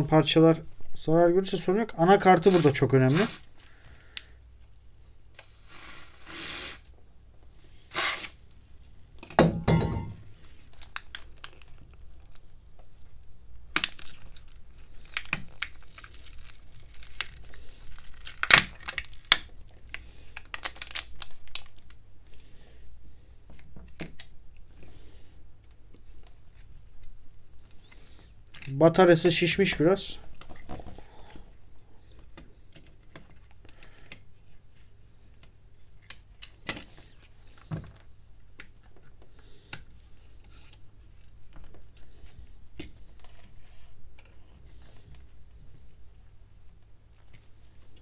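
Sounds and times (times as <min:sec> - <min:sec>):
aerosol spray can hissing: 0:02.5 - 0:03.4, 0:05.4 - 0:06.8, 0:07.9 - 0:08.4
crackling and tearing adhesive: 0:10.4 - 0:22.0.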